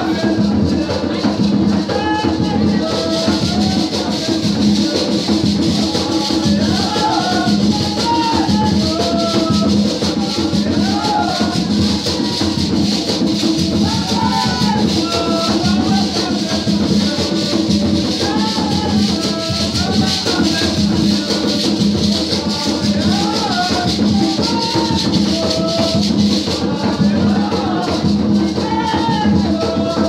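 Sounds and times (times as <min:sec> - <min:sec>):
drums: 0:00.0 - 0:30.0
shaker rattles: 0:00.0 - 0:30.0
voices singing: 0:00.0 - 0:30.0.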